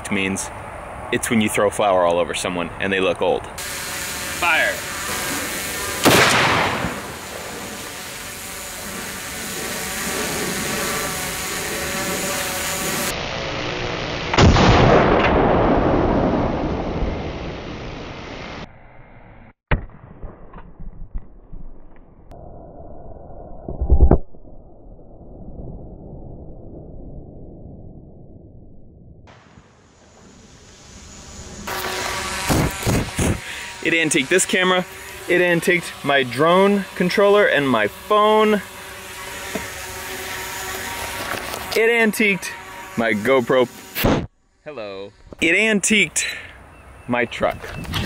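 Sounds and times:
rifle shot: 0:06.0 - 0:07.5, 0:14.3 - 0:16.6.

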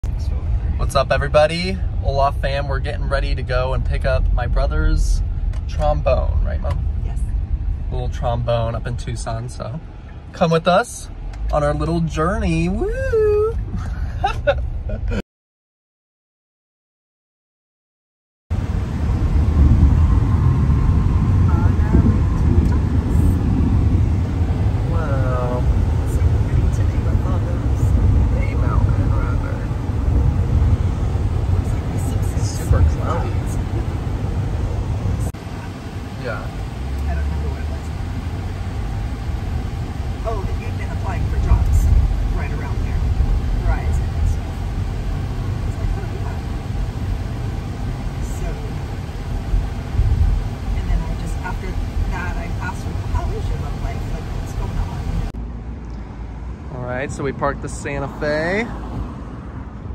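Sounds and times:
road and engine rumble: 0:00.0 - 0:15.2, 0:18.5 - 0:59.9.

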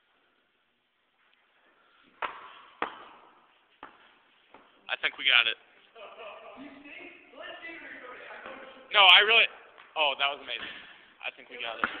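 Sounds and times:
basketball hitting hard surfaces: 0:02.1 - 0:05.4, 0:11.8 - 0:12.0.

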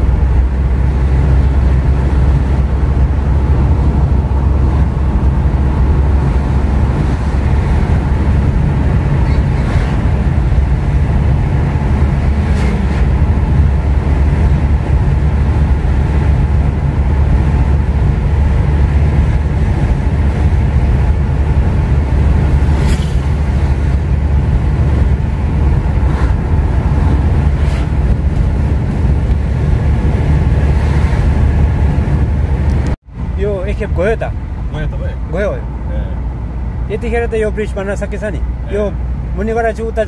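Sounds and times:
engine and tyre rumble inside car: 0:00.0 - 0:40.0.

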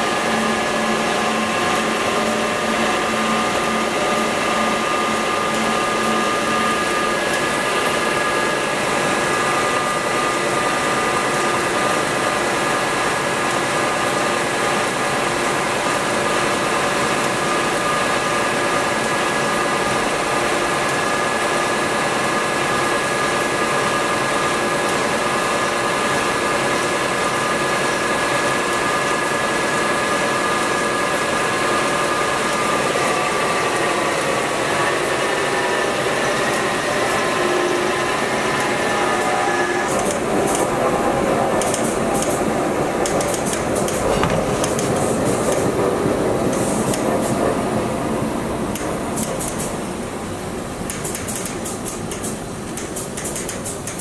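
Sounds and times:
belt sander drone and whine: 0:00.0 - 0:11.3, 0:27.4 - 0:46.5.

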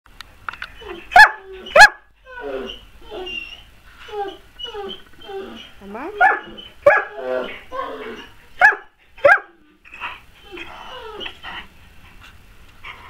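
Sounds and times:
dog barking: 0:01.1 - 0:02.1, 0:06.2 - 0:07.2, 0:08.6 - 0:09.6.

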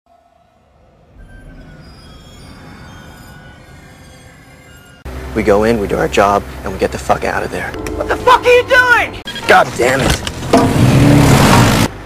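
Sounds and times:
high metallic squealing tones: 0:00.2 - 0:05.2, 0:07.2 - 0:11.0
low rumble: 0:07.3 - 0:09.3.

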